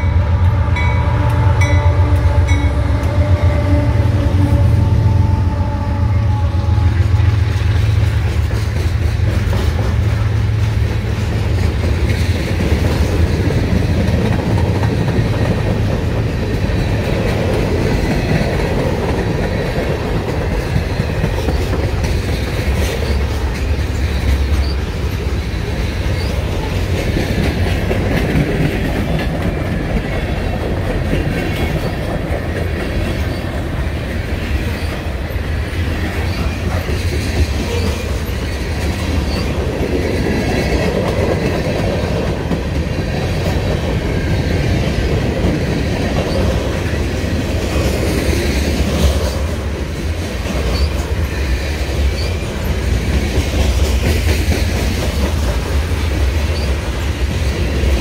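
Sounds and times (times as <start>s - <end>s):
train cars clicking: 0.0s - 58.0s
train wheels rumbling on rail: 0.0s - 58.0s.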